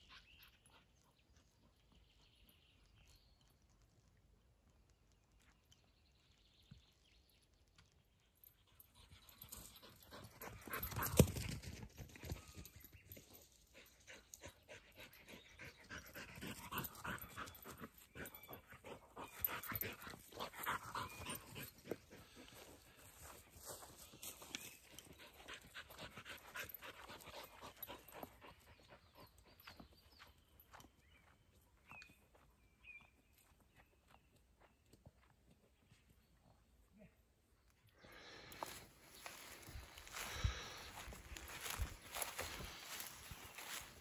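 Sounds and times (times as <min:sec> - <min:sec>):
rustling through grass: 0:38.6 - 0:44.0.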